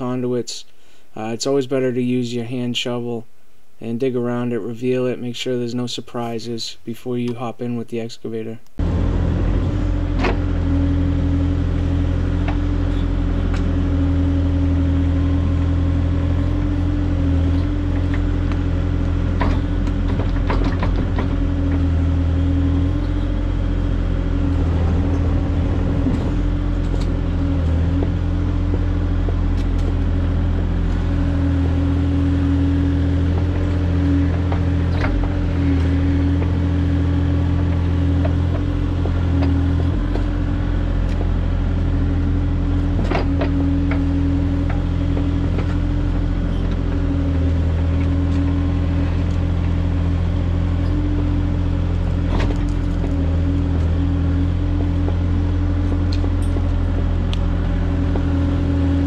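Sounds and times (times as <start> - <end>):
diesel engine running: 8.8 - 59.0
excavator bucket clanking: 16.6 - 23.4, 24.3 - 51.4, 52.1 - 59.0.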